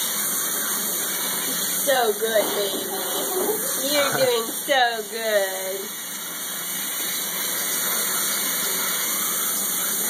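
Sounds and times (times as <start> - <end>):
water spraying onto dog's coat: 0.0 - 10.0.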